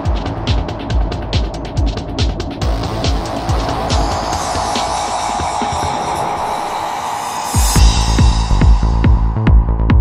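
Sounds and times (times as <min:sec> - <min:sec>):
psytrance music: 0:00.0 - 0:10.0.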